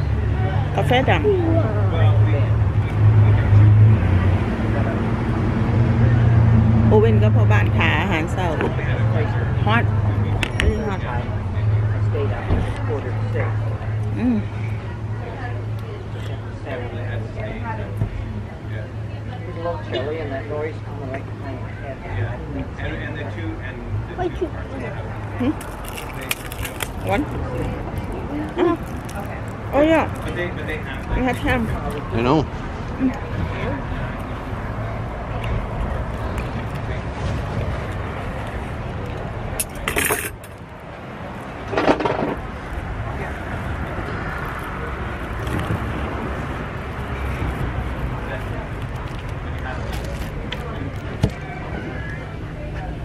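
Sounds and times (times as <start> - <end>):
pastry crust crackling: 25.6 - 28.1.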